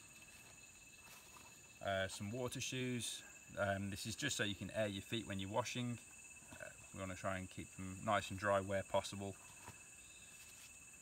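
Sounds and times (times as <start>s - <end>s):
rainforest insects buzzing: 0.0s - 11.0s
man talking: 1.8s - 9.4s.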